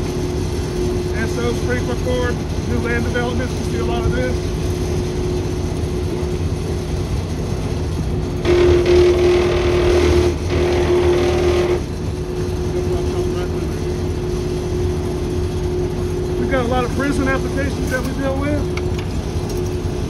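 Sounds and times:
pump motor humming: 0:00.0 - 0:20.0.

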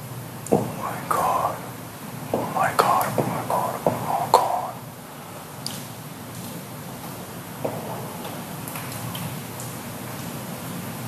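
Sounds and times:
man whispering: 0:00.6 - 0:04.8.

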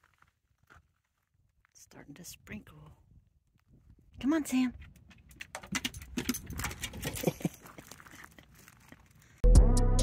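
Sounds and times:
dog footsteps on gravel: 0:04.6 - 0:09.4.

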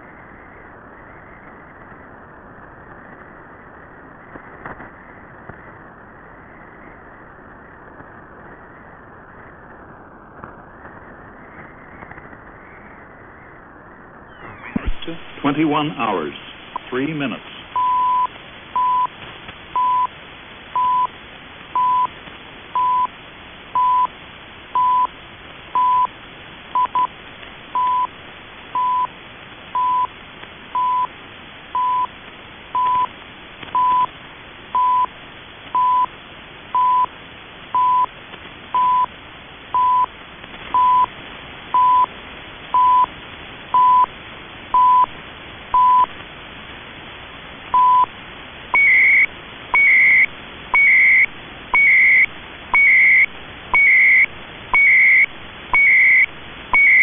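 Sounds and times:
receiver hiss: 0:00.0 - 0:57.0
warbling data bursts: 0:14.3 - 0:19.0, 0:48.8 - 0:57.0.

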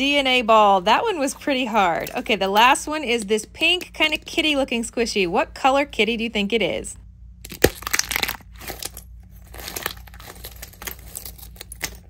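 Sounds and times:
plaster shell cracking: 0:07.4 - 0:12.0
small crackles and crunches: 0:07.4 - 0:12.0.

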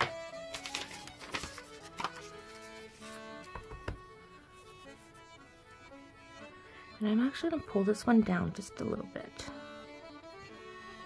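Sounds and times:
instrumental music: 0:00.0 - 0:11.0
knocks on work surface: 0:03.5 - 0:04.1.

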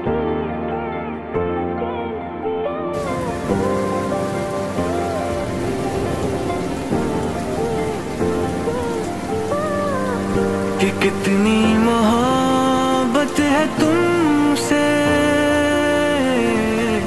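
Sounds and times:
soft slow music: 0:00.0 - 0:17.0
rain pattering: 0:03.0 - 0:17.0
man singing: 0:08.8 - 0:17.0.

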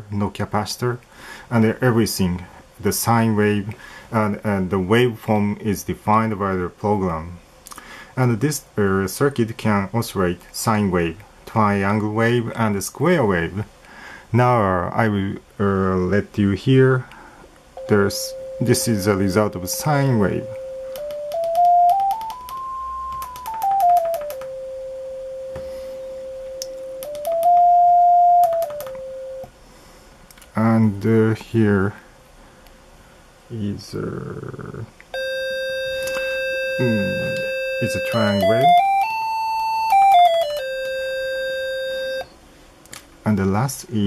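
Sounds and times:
sine-wave tone stepping in pitch: 0:17.8 - 0:29.5, 0:35.2 - 0:42.3.

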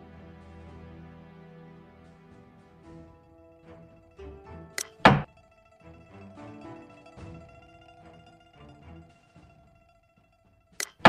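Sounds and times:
quiet background music: 0:00.0 - 0:11.0
loud wooden thunk: 0:04.8 - 0:05.3
sharp click: 0:04.8 - 0:05.3, 0:10.8 - 0:11.0.

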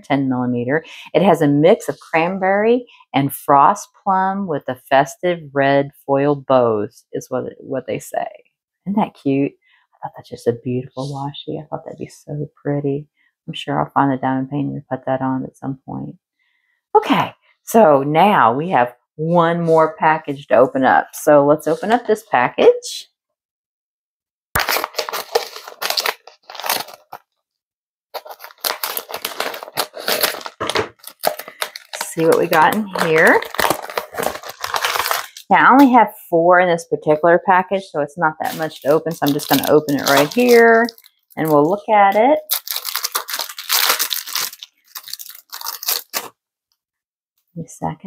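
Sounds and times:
foil mailer crinkling and tearing: 0:24.6 - 0:27.3, 0:28.1 - 0:35.9, 0:38.4 - 0:46.3.

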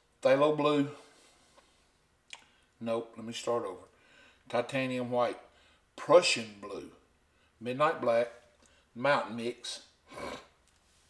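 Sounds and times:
man speaking: 0:00.2 - 0:01.1, 0:02.8 - 0:03.9, 0:04.5 - 0:07.0, 0:07.6 - 0:10.0.

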